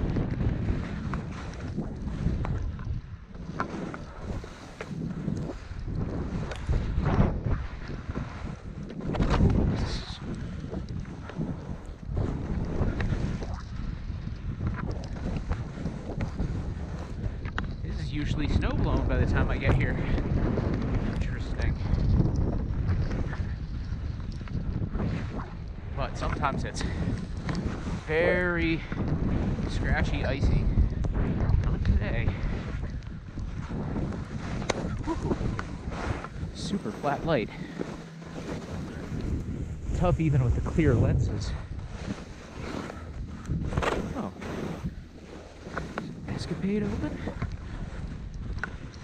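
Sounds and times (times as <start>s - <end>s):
wind buffeting microphone: 0.0s - 49.0s
skis sliding over snow: 0.1s - 49.0s
skis hissing through snow: 3.7s - 4.8s, 35.8s - 39.2s, 41.9s - 43.0s, 44.0s - 46.5s.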